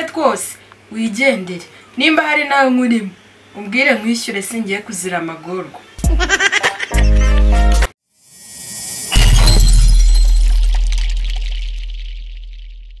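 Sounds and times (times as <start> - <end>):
heavy impact hit: 9.1 - 13.0.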